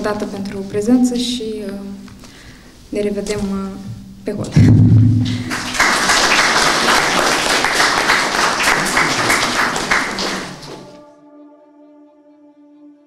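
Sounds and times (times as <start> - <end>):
audience applauding: 5.2 - 11.0.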